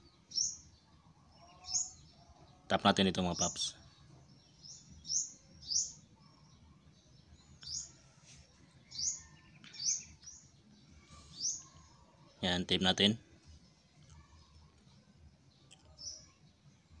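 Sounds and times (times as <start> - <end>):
small bird chirping: 0.0 - 12.4, 13.0 - 17.0.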